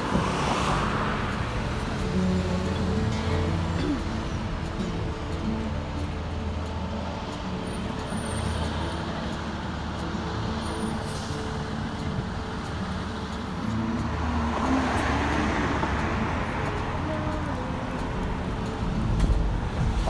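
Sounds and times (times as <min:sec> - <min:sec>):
car driving in traffic: 0:00.0 - 0:20.0.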